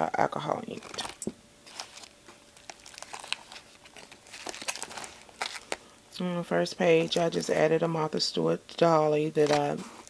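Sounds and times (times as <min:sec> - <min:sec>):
paper rustling and crinkling: 0:00.7 - 0:05.8, 0:09.4 - 0:10.0.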